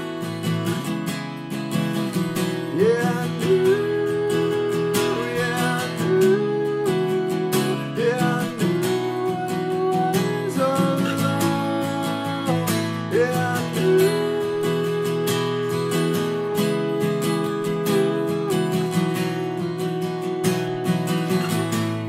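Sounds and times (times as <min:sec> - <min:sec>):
acoustic guitar strumming: 0:00.0 - 0:22.0
man singing: 0:02.4 - 0:22.0.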